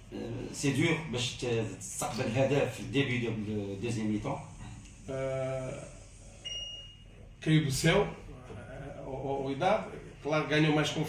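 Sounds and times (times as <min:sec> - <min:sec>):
man saying uhh: 0:05.0 - 0:06.0, 0:08.2 - 0:09.4.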